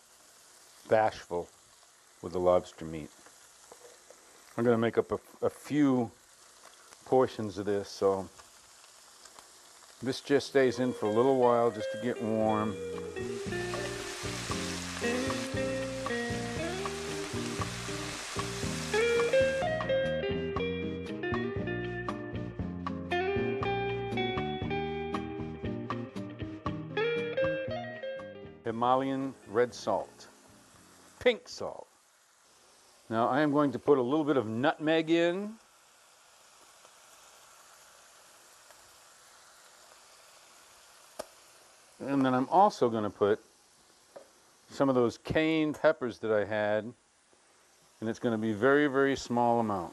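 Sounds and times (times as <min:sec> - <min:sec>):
food frying in butter: 0:00.0 - 0:20.2, 0:28.7 - 0:49.9
plucked guitar-like background music: 0:10.7 - 0:28.8.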